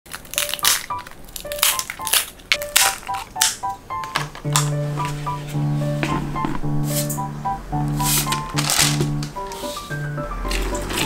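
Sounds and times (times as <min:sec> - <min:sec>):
crisp bread snapping: 0:00.1 - 0:03.6.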